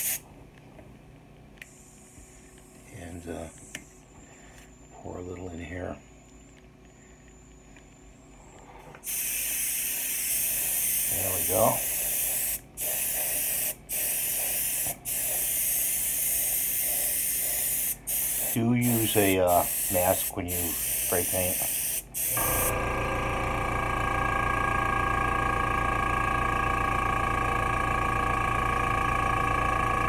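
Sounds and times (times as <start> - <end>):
airbrush hissing: 0.0 - 0.2, 9.0 - 22.7
faint steady hum: 0.0 - 21.2.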